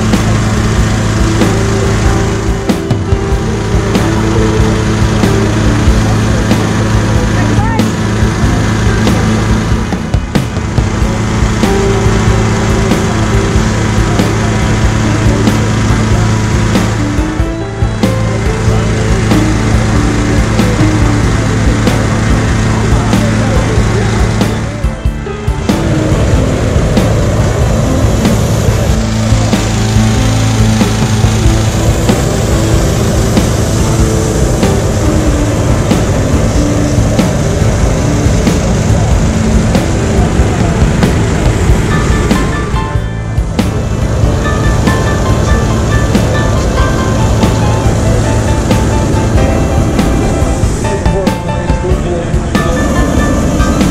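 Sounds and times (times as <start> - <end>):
background music: 0.0 - 53.9
inflator fan running: 0.0 - 53.9.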